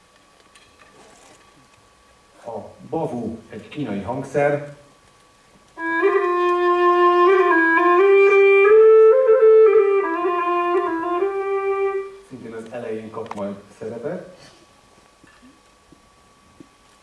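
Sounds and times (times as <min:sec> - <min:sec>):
free-reed wind instrument melody: 0:05.8 - 0:12.3.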